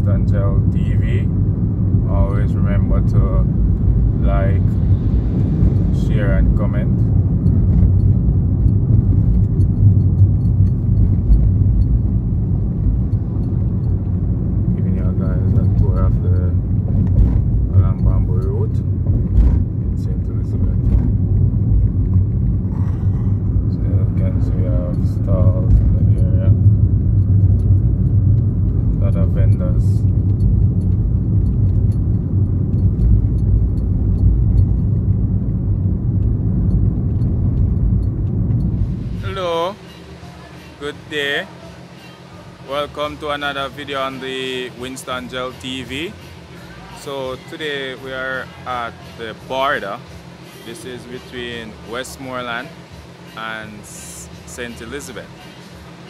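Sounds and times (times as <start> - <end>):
car engine and tyres rumble: 0.0 - 56.0.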